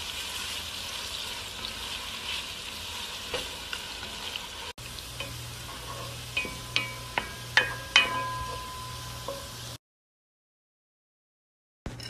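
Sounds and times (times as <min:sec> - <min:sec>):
onions sizzling in oil: 0:00.0 - 0:09.8.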